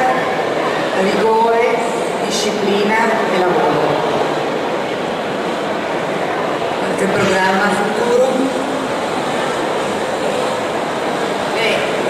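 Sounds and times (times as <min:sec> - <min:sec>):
exhibition hall hiss and rumble: 0:00.0 - 0:12.0.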